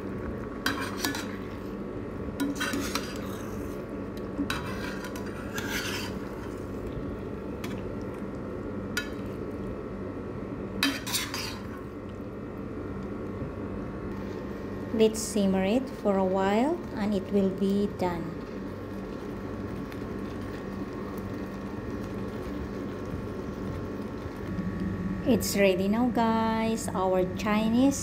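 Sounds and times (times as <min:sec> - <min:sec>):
low hum: 0:00.0 - 0:28.0
metal utensil scraping a pan: 0:00.6 - 0:01.4, 0:02.4 - 0:03.7, 0:04.5 - 0:06.3, 0:10.8 - 0:11.7.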